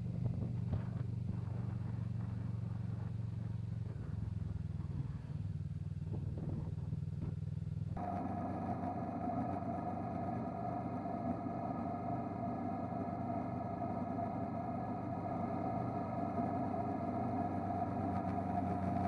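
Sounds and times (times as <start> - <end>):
motorcycle engine droning: 0.0 - 19.0
road and wind noise: 0.0 - 19.0.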